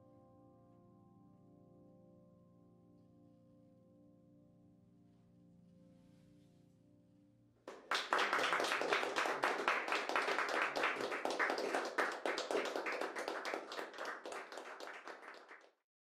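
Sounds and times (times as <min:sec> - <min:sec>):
audience applause: 0:07.7 - 0:15.8.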